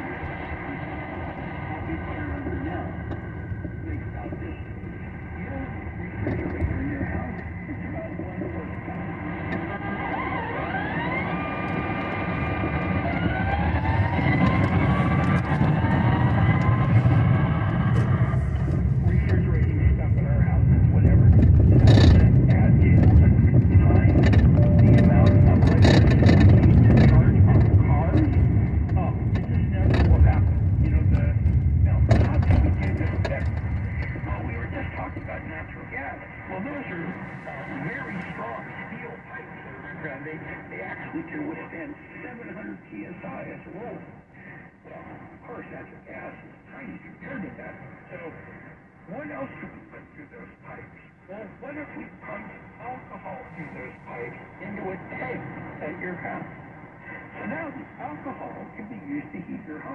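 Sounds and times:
faint talk: 0.0s - 11.8s, 13.0s - 59.9s
car engine and tyre rumble: 0.0s - 38.4s
brief rising tones: 24.3s - 27.0s.

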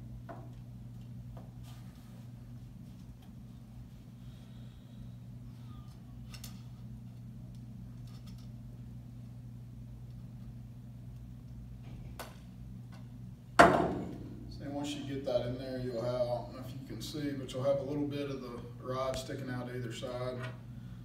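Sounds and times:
steady low hum: 0.0s - 21.0s
small clicks and handling noises: 5.9s - 8.6s
sharp loud knock: 13.6s - 14.2s.

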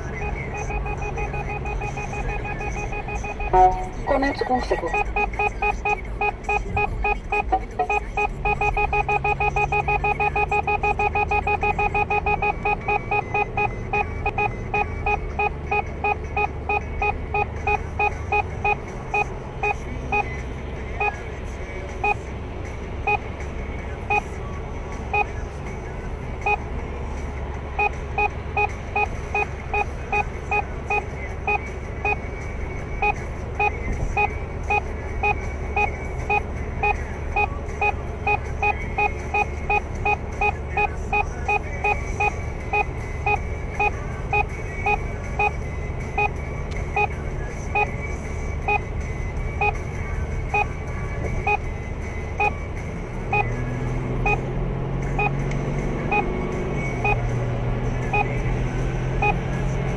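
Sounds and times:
electronic warning beeps: 0.0s - 21.3s, 22.0s - 22.3s, 23.0s - 26.8s, 27.8s - 52.6s, 53.2s - 55.4s, 56.0s - 59.7s
road and engine noise: 0.0s - 59.9s.

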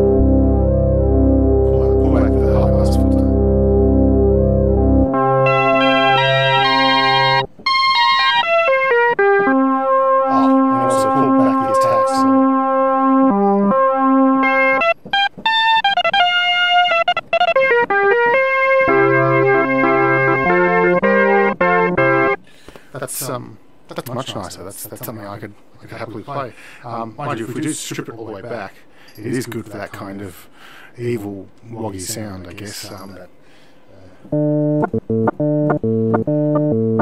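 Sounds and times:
synthesizer chords and bass notes: 0.0s - 7.5s, 9.2s - 14.9s, 18.2s - 22.4s, 34.3s - 37.0s.

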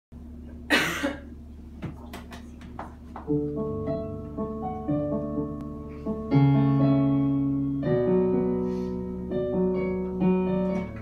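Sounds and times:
low steady room hum: 0.2s - 11.0s
person coughing: 0.7s - 1.4s.

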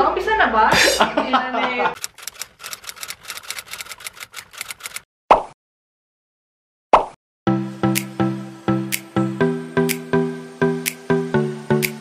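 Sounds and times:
person laughing while speaking: 0.7s - 2.0s
rapid sharp clicks: 2.0s - 5.1s.

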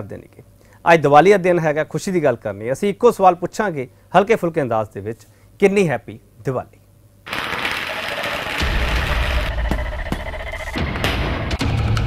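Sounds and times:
fireworks crackling: 7.3s - 11.0s
music: 8.6s - 12.0s.

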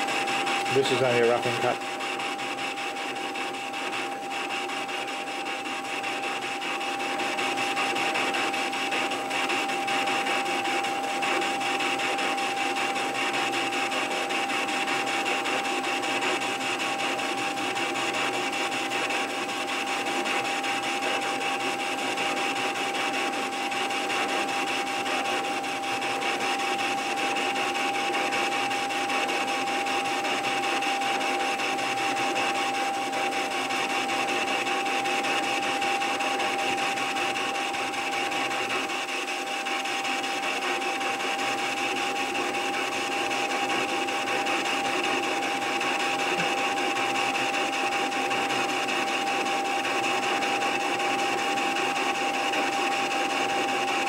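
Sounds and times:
hiss of lathe cutting: 0.0s - 9.5s, 44.5s - 47.1s
metal lathe motor and gear whine: 0.0s - 54.0s.

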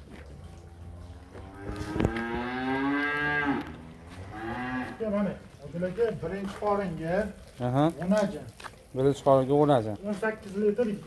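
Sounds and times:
cow mooing: 0.8s - 5.0s.

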